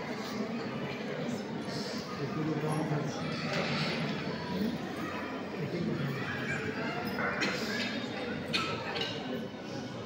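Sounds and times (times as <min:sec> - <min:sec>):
voices murmuring in echoing hall: 0:00.0 - 0:10.0.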